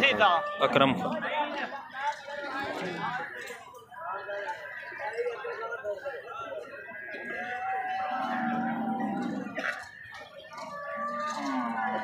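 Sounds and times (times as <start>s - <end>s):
market background noise: 0.0s - 12.0s
cattle lowing: 8.2s - 9.8s.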